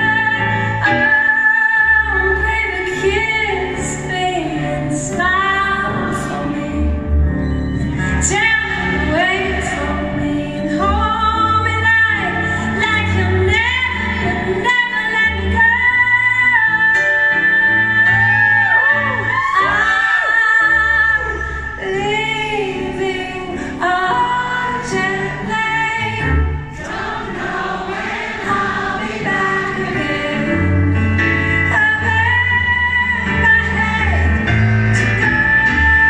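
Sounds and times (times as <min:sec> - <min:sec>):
woman singing a ballad: 0:00.0 - 0:07.1, 0:08.1 - 0:26.6, 0:29.2 - 0:36.0.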